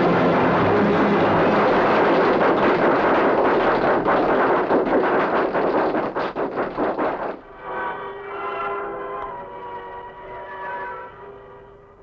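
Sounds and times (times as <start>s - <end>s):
train rushing noise: 0.0s - 7.4s
rhythmic train clatter: 0.0s - 7.5s.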